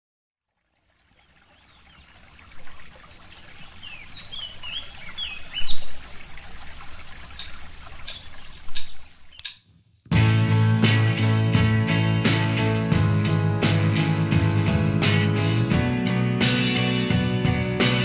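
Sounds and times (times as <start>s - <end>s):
running water trickling: 0.4s - 9.5s
birds chirping: 1.1s - 9.6s
sharp ticks: 7.4s - 9.6s
music: 10.1s - 18.0s.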